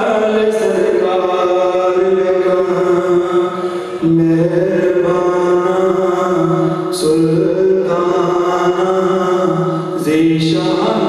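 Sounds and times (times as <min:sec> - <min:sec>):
man chanting unaccompanied: 0:00.0 - 0:11.0
breath: 0:03.6 - 0:04.0, 0:09.7 - 0:10.0.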